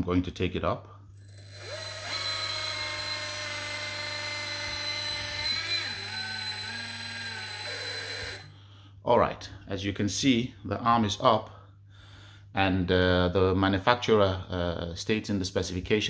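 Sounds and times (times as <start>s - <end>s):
electric hydraulic pump whine: 1.2s - 8.5s.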